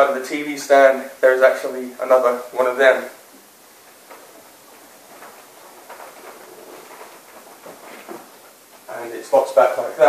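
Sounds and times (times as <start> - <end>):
furniture rolling across floor: 3.3 - 9.4.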